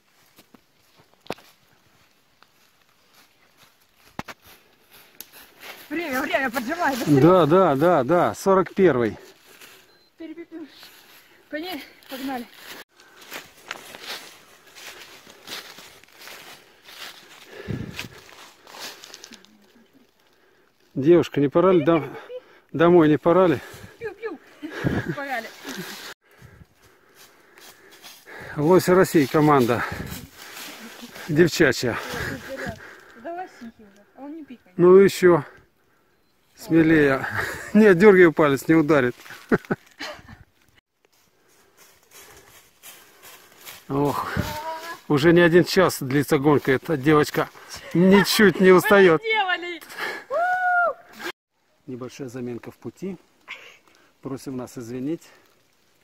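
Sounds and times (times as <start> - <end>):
footsteps through dry leaves: 0.0 - 8.1, 10.6 - 19.7, 25.0 - 33.1, 38.4 - 40.1, 41.1 - 45.4.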